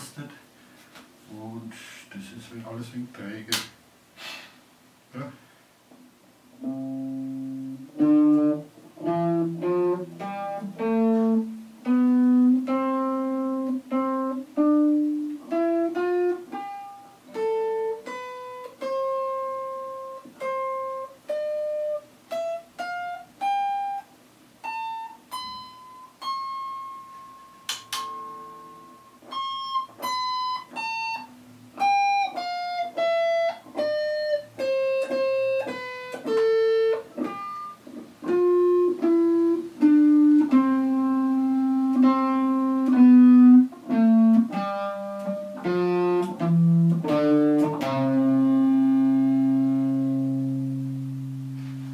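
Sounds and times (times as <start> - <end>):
electric guitar plucked melody: 6.6 - 51.9.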